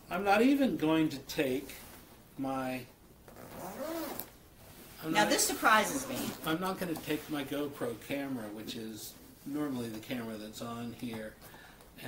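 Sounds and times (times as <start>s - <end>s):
zipper on fabric backpack: 3.3s - 4.3s.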